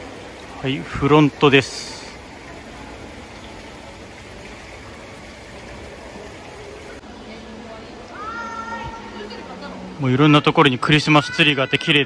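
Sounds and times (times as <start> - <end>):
hotel lobby background noise: 0.0 - 12.0.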